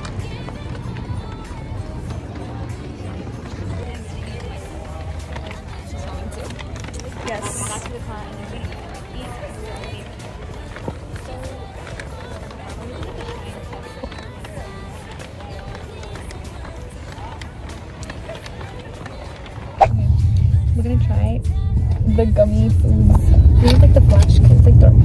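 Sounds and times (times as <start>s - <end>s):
footsteps: 0.0s - 24.6s
background music: 0.0s - 25.0s
indistinct voices: 0.0s - 25.0s
car interior rumble: 19.8s - 25.0s
steady low rumble: 19.8s - 25.0s.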